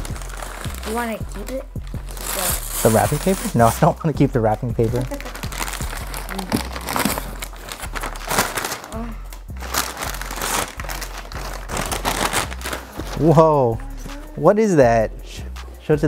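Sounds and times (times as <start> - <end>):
wrapping paper tearing and crumpling: 0.0 - 3.9, 5.0 - 13.4.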